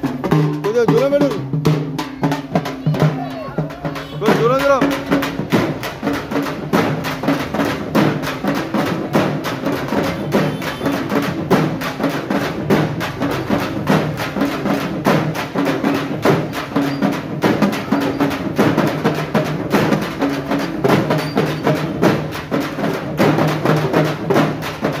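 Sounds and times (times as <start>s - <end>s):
frame drums in fast rhythm: 0.0s - 25.0s.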